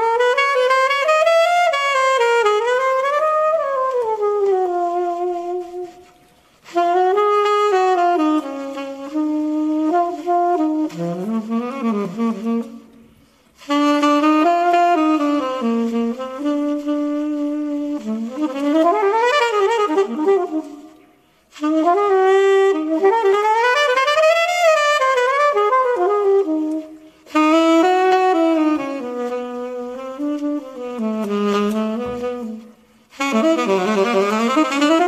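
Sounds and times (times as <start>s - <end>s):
alto saxophone jazz melody: 0.0s - 35.0s.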